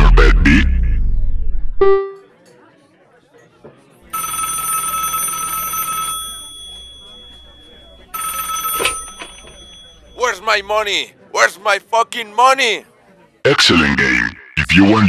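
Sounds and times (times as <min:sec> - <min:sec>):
electronic ringing tone: 0:01.8 - 0:02.3, 0:04.1 - 0:10.2.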